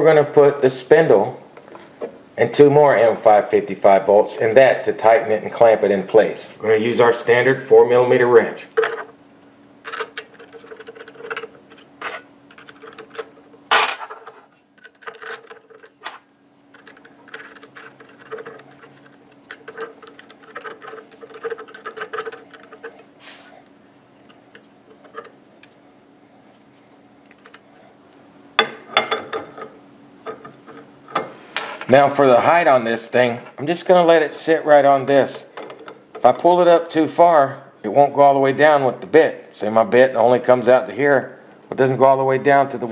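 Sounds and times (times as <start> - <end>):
faint steady hum: 0.0 - 42.9
allen wrench clicking on bolts: 12.5 - 13.4, 16.8 - 23.0.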